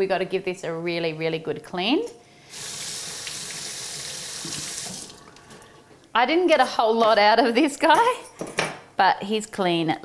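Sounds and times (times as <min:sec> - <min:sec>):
kitchen tap running water: 0:02.5 - 0:05.8.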